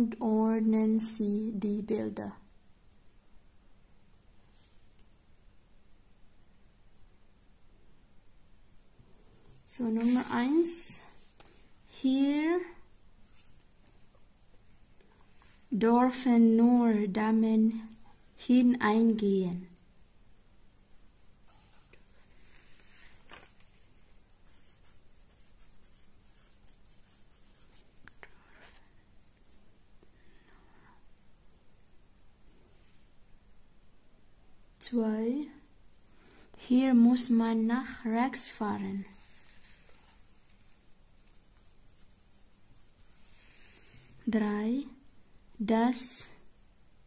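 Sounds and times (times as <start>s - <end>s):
handwriting scratching on paper: 24.5s - 28.8s, 41.2s - 43.8s.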